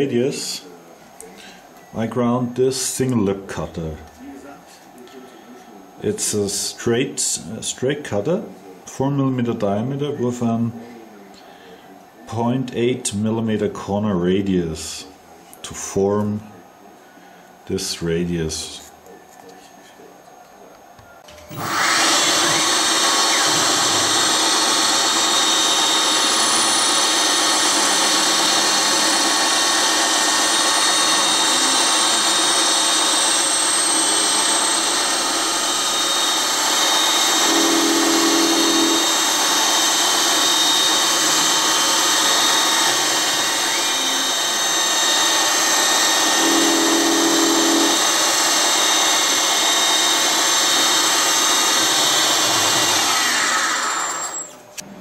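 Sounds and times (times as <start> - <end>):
milling machine whine: 21.0 - 55.0.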